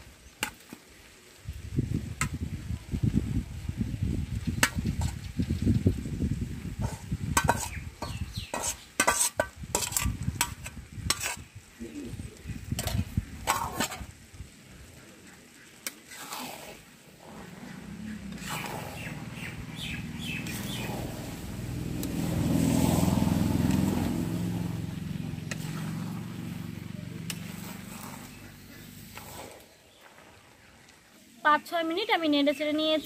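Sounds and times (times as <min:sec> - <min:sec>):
vehicle engine passing by: 0:17.2 - 0:29.5.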